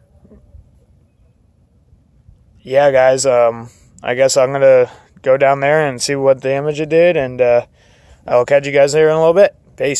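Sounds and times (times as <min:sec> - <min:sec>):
faint low rumble: 0:00.0 - 0:08.6.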